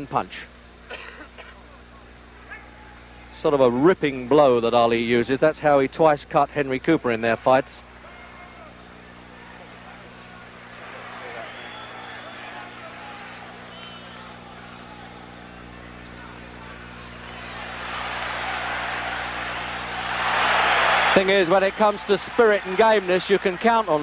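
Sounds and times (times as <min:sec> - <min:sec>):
low recording hum: 0:00.0 - 0:24.0
arena crowd voices: 0:07.6 - 0:24.0.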